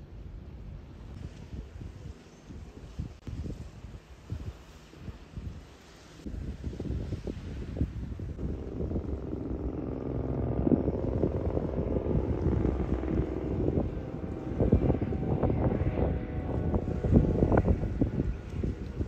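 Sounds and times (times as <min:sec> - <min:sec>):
wind buffeting microphone: 0:00.6 - 0:19.0
steady engine drone: 0:08.4 - 0:19.0.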